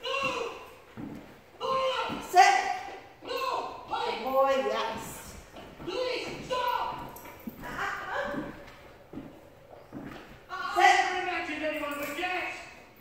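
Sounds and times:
person talking: 0:01.6 - 0:08.7, 0:10.5 - 0:12.9.

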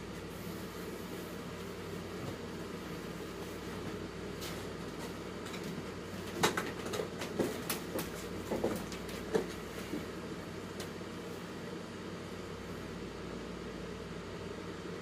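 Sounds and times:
steady low hum: 0:00.0 - 0:15.0
knocks and thumps of climbing: 0:03.8 - 0:10.2.

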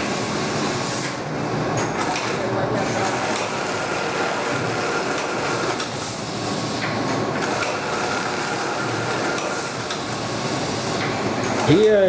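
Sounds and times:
sack conveyor running: 0:00.0 - 0:12.0.

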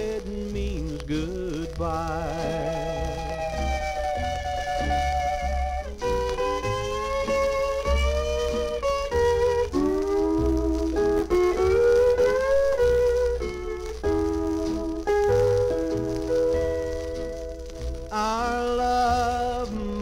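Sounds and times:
country song on old record: 0:00.0 - 0:20.0
steel guitar melody: 0:00.0 - 0:20.0.

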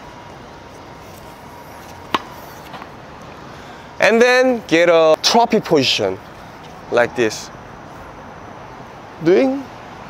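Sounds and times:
tennis racket hitting ball: 0:01.8 - 0:03.0.

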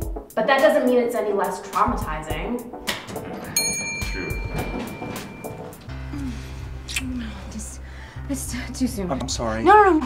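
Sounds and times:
elevator arrival chime: 0:03.4 - 0:06.1.

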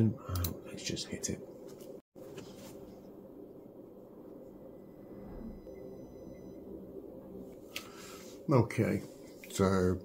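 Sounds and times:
faint thin high whines: 0:04.0 - 0:09.6.

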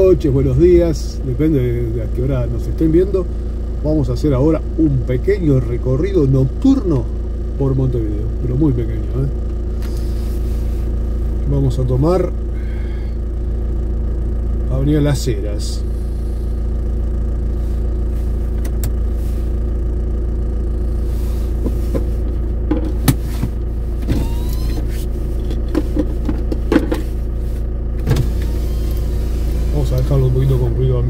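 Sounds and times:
car engine idling: 0:00.0 - 0:31.0.

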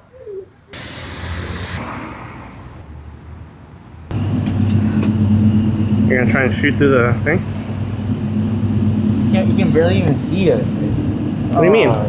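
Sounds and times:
car passing on street: 0:00.7 - 0:04.4
loud low mechanical hum: 0:00.8 - 0:01.8, 0:04.1 - 0:12.0.

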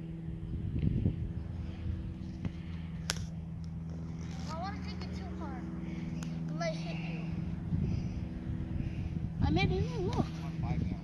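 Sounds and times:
low motor hum: 0:00.0 - 0:11.0
voices: 0:04.2 - 0:08.2, 0:08.9 - 0:11.0.

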